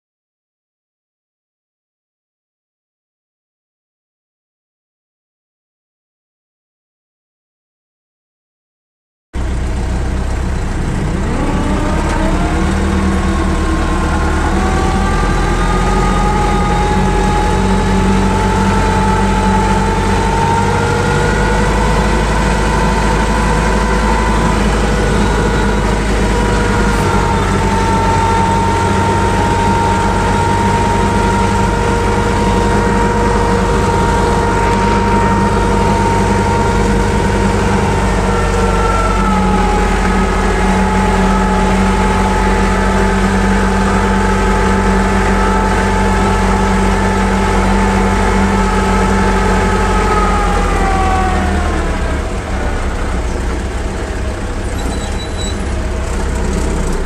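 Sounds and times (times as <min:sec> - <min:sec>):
tractor engine running under load: 0:09.4 - 0:57.0.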